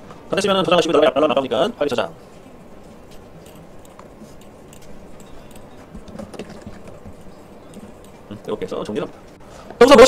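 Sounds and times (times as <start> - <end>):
low room hum: 0.0 - 10.0
computer mouse clicking: 3.1 - 8.2.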